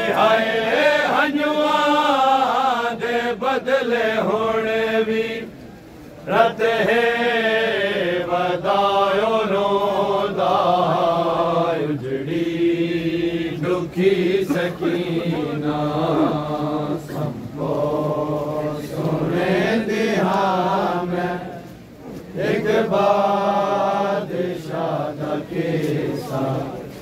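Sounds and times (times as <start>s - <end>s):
men chanting a lament: 0.0s - 5.5s, 6.3s - 21.7s, 22.4s - 26.9s.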